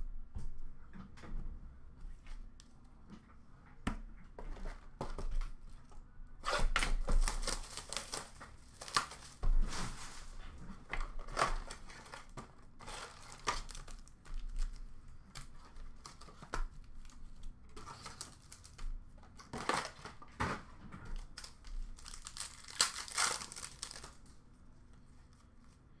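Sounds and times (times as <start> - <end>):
wrapper tearing: 6.4 - 9.4, 11.2 - 18.8, 19.4 - 20.2, 21.2 - 24.3
foil wrappers crinkling: 7.0 - 20.3, 21.1 - 24.4.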